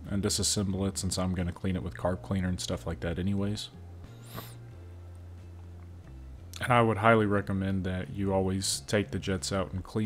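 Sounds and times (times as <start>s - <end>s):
person sniffing: 4.1s - 4.7s.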